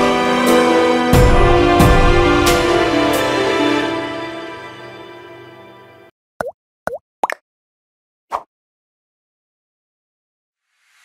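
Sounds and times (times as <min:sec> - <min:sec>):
background music: 0:00.0 - 0:06.1
cartoon bubble pops: 0:06.4 - 0:07.4.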